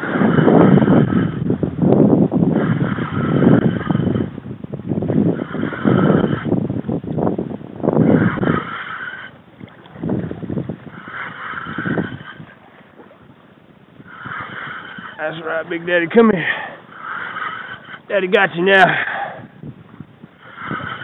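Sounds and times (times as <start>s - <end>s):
wind buffeting microphone: 0.0s - 21.0s
water splashing against kayak hull: 8.2s - 15.1s.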